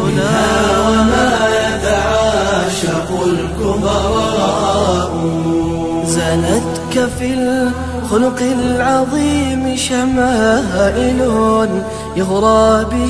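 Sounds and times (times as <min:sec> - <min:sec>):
layered voices chanting: 0:00.0 - 0:11.2
steady low drone: 0:00.0 - 0:13.0.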